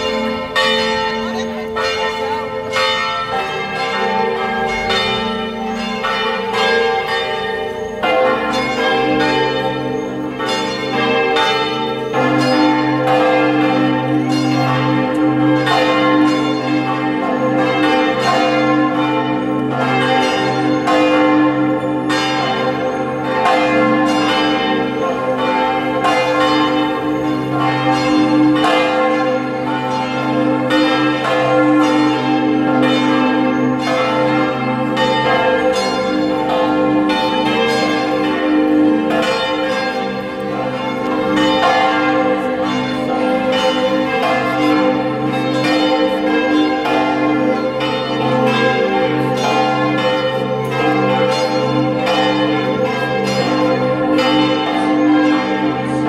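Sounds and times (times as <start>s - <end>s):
church bells ringing: 0.0s - 56.0s.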